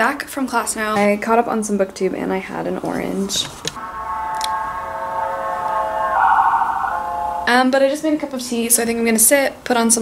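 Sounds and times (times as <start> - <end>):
steady pitched tone: 3.8 - 8.0.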